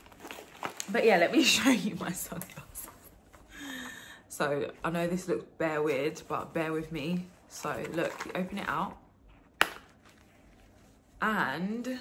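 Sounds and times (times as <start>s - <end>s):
press-stud snap of case: 9.6s - 9.9s.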